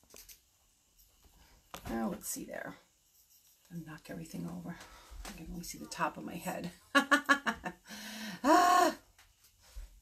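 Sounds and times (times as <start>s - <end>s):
woman laughing: 6.9s - 9.0s.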